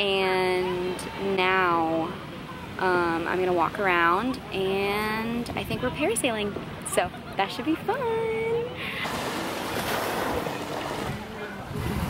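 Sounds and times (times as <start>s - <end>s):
sea surf washing on beach: 8.2s - 12.0s
wind on microphone: 9.0s - 12.0s.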